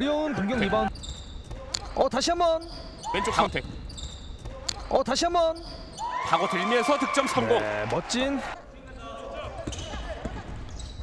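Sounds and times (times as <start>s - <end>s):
sneakers squeaking: 0.4s - 6.3s, 8.8s - 11.0s.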